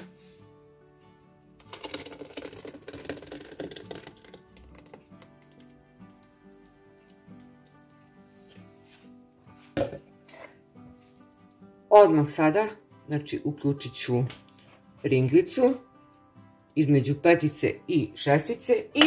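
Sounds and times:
faint background music: 0.0 - 19.0
puree pouring and splashing into pot: 1.5 - 8.5.

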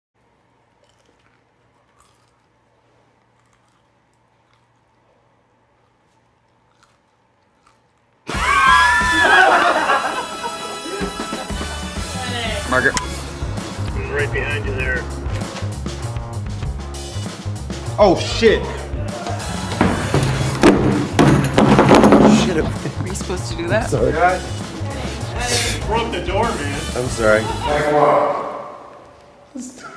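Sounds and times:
chewing a snack: 0.2 - 8.3
background music with bass line: 8.3 - 27.9
sharp knock: 19.8 - 22.8.

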